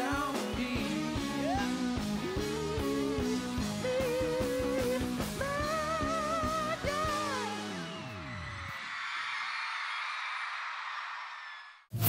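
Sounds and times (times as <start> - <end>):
crowd cheering and applauding: 4.1 - 11.9.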